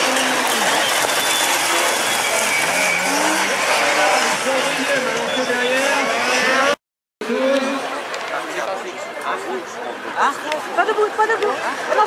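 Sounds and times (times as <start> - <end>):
race car engines revving past: 0.0 - 8.2.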